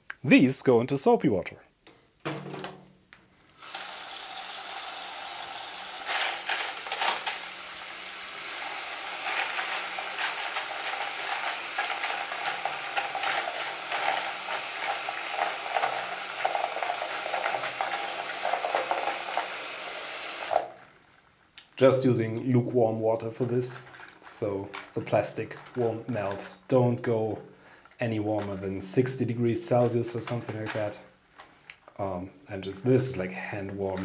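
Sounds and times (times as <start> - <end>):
tap water running into tub: 3.6 - 20.8
plastic keycaps rattling in water: 9.2 - 19.3, 23.7 - 26.5.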